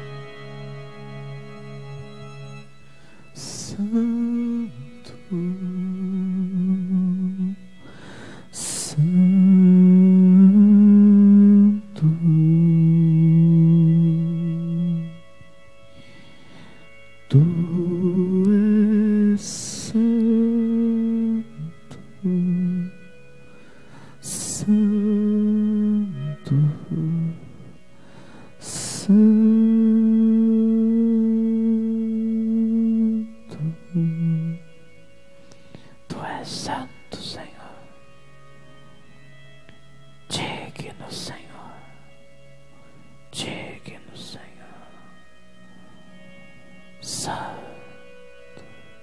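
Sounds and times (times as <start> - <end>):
man humming long notes: 0.0 - 39.0
soft sustained music pad: 0.0 - 49.0
hissy in-breath: 7.8 - 8.5
man whispering into microphone: 36.1 - 37.9, 40.3 - 42.0, 43.3 - 45.1, 47.0 - 47.9.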